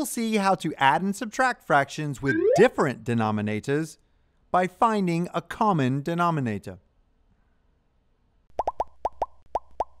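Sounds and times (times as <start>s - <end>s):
cartoon plops with rising pitch: 2.2s - 2.8s.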